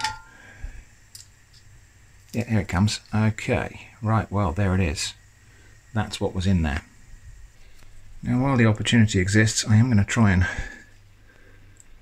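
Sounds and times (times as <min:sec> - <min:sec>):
metal tongs clinking on skillet: 0:00.0 - 0:00.3.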